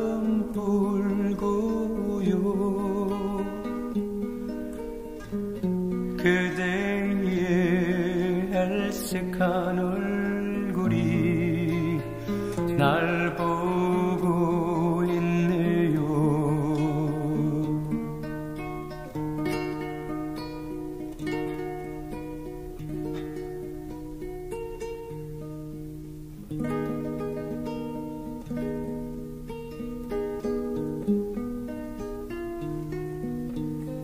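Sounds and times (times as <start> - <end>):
acoustic guitar picking melody: 0.0 - 34.0.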